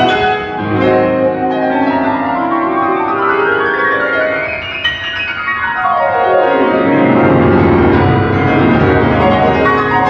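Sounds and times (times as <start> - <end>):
loud low piano chords: 0.0 - 10.0.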